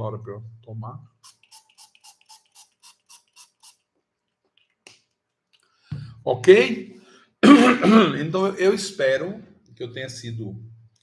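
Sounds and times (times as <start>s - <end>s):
person clearing throat: 7.4s - 8.2s.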